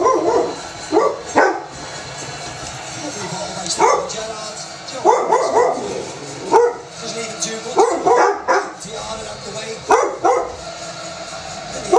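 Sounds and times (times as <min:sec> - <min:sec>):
dog barking: 0:00.0 - 0:01.7, 0:03.7 - 0:04.2, 0:05.0 - 0:06.9, 0:07.8 - 0:08.8, 0:09.9 - 0:10.6.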